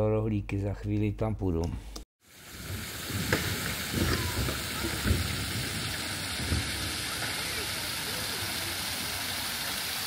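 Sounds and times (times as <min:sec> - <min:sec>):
fountain spray splashing into basin: 0:02.2 - 0:10.0.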